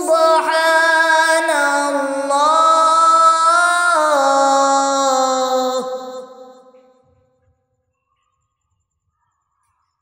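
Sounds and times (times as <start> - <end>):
man chanting recitation: 0.0 - 7.1.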